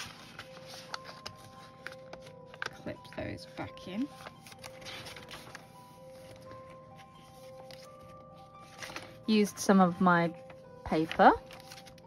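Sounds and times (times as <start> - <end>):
paper rustling and tapping: 0.0 - 3.2, 4.2 - 6.6, 7.3 - 9.2, 10.4 - 12.0
quiet background music: 0.0 - 12.0.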